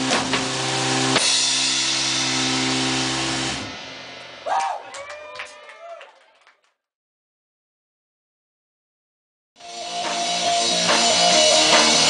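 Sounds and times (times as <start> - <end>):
electric guitar and bass chord: 0.0 - 3.8
drum and cymbal hits: 0.0 - 4.6, 9.6 - 12.0.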